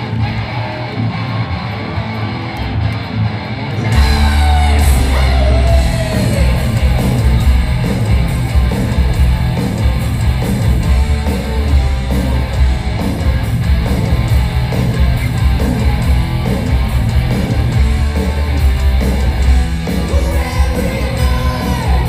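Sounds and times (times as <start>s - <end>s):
live heavy metal band: 0.0s - 22.0s.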